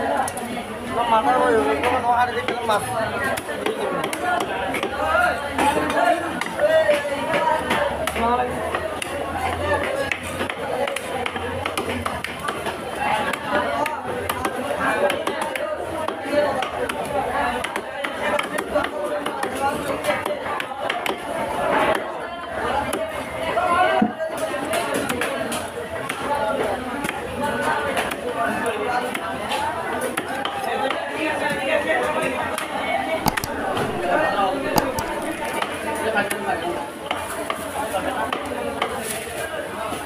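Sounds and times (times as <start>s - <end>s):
knife chopping on wooden block: 33.2s - 35.5s
voices chattering: 33.2s - 35.9s.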